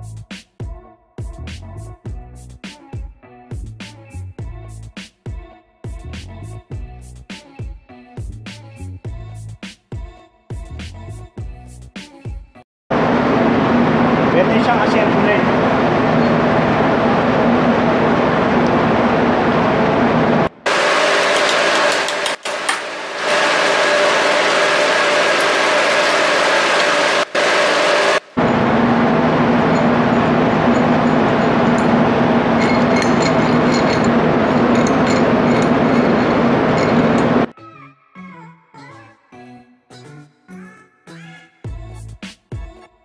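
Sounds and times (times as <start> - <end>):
loud machinery hum: 12.9 - 37.5.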